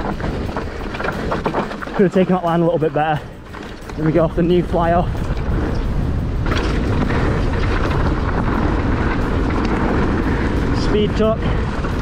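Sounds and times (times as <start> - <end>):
bike tyres rolling on dirt: 0.0 - 12.0
wind buffeting microphone: 0.0 - 12.0.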